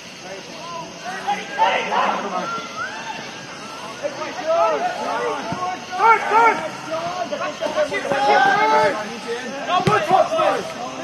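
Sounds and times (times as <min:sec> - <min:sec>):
men shouting: 0:00.9 - 0:10.7.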